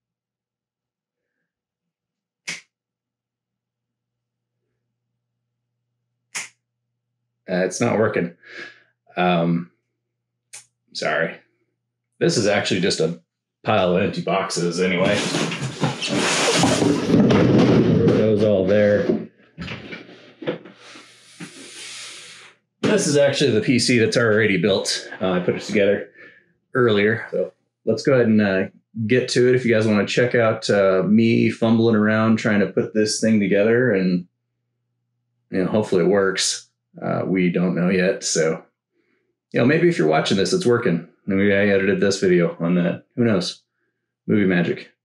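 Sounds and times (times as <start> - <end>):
finger snap: 2.5 - 2.7, 6.4 - 6.6
cardboard boxes knocking and rustling: 15.1 - 18.3.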